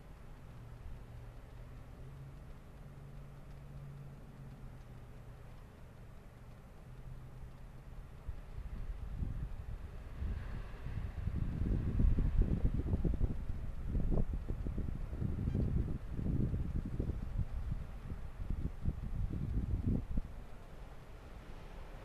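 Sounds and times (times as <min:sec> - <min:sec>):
wind gusting on microphone: 0:08.2 - 0:22.0.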